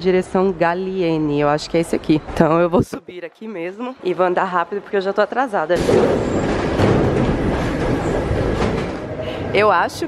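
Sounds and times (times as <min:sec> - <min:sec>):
metro train running on rails: 0:04.1 - 0:10.0.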